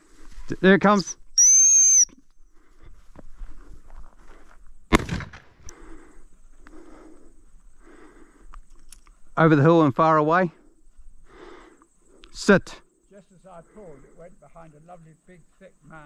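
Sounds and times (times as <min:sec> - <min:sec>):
shrill dog whistle blast: 0:01.4 - 0:02.2.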